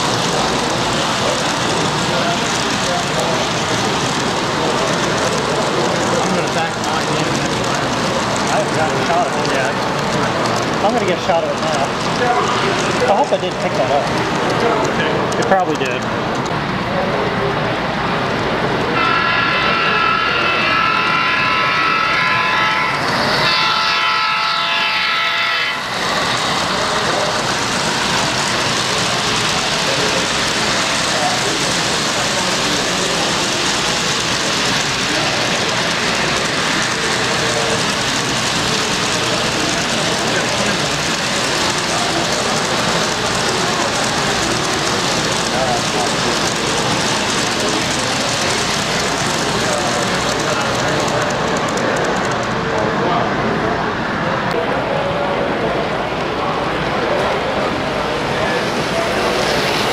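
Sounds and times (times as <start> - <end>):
model freight train rolling: 0.0 - 59.9
model locomotive horn: 19.0 - 26.6.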